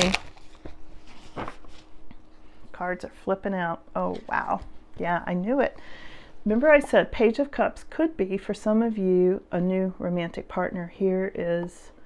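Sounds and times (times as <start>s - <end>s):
cards being shuffled: 0.0s - 1.9s.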